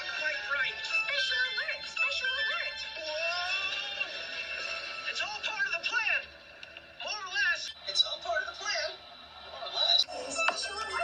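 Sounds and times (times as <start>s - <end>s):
upbeat cartoon music: 0.0s - 6.2s.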